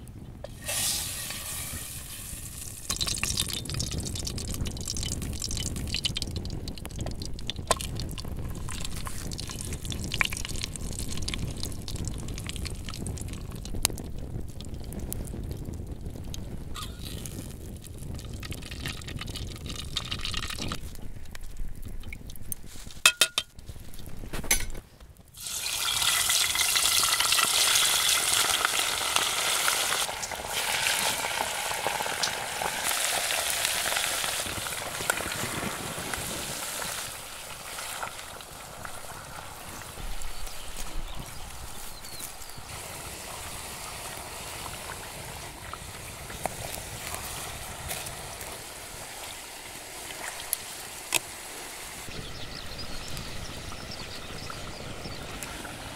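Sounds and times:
low rumble with crackles: 0.0s - 25.4s, 28.5s - 55.9s
meat sizzling in hot fat: 0.5s - 21.2s, 25.4s - 55.9s.

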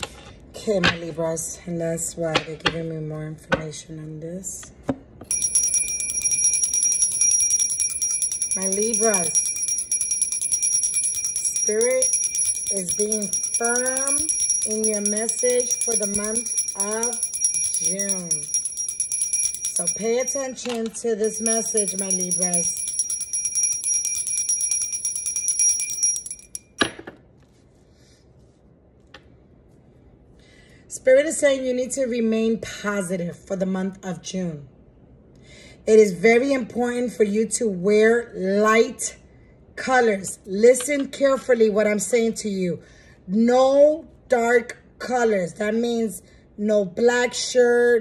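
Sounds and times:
hand bell ringing rapidly: 5.3s - 26.9s.

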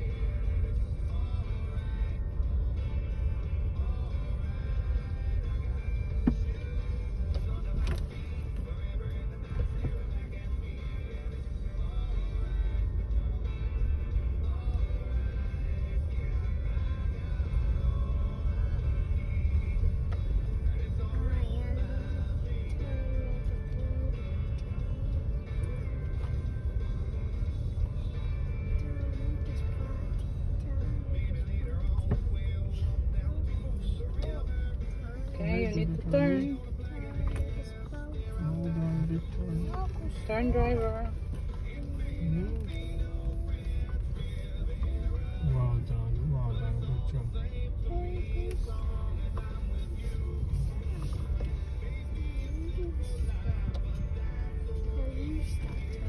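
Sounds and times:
car cabin rumble: 0.0s - 56.0s
music playing: 0.0s - 56.0s.

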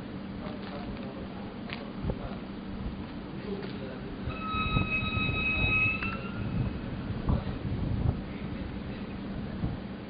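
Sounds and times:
diesel locomotive engine rumbling: 0.0s - 10.0s
steady high-pitched tone: 4.2s - 7.6s.

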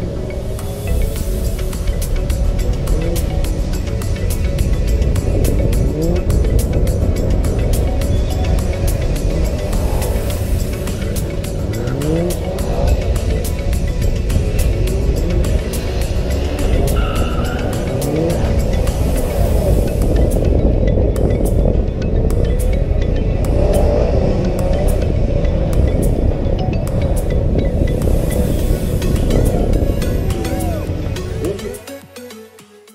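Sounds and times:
car engine revving: 0.0s - 31.8s
music with steady beat: 0.0s - 32.9s.

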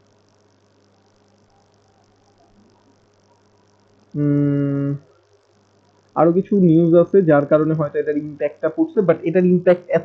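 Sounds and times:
man's drawn-out hesitation sound: 4.2s - 5.0s.

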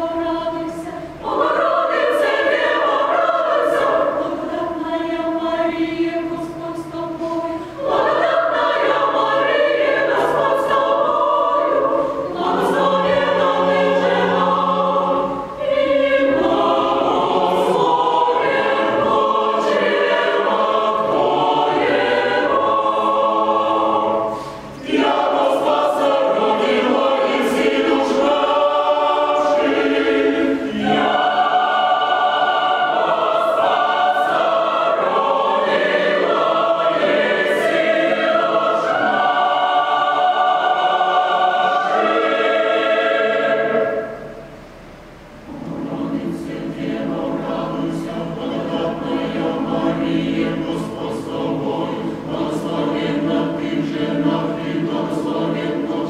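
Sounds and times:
mixed choir singing: 0.0s - 44.6s, 45.5s - 56.0s.

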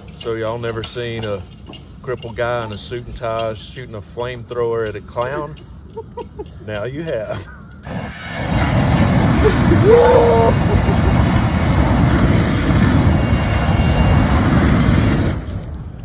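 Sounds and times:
flamethrower blast: 7.8s - 16.0s
person shouting: 9.7s - 10.7s.

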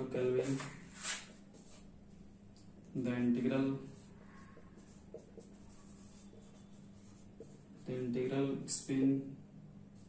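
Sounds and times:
marker squeaking on whiteboard: 3.8s - 7.9s.

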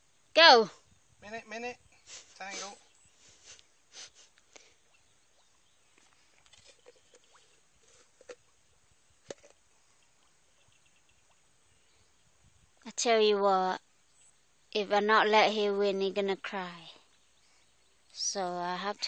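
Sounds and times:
fishing tackle clicks and knocks: 6.5s - 8.5s, 9.2s - 9.6s.

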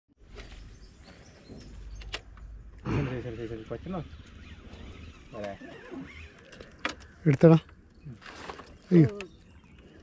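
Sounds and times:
faint bird chirps: 0.2s - 10.0s.

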